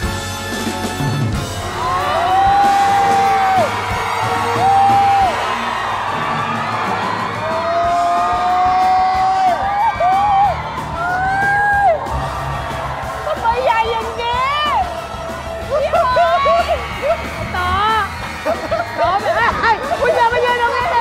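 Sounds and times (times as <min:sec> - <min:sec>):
background music: 0:00.0 - 0:21.0
people shrieking: 0:01.6 - 0:21.0.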